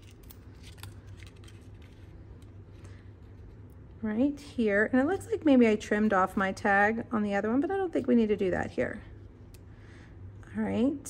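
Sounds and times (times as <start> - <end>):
paper rustling: 0.0 - 3.6
low steady hum: 0.0 - 11.0.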